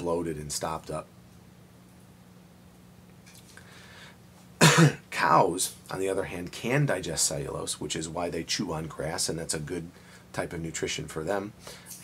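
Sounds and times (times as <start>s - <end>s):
man coughing: 4.6s - 5.1s.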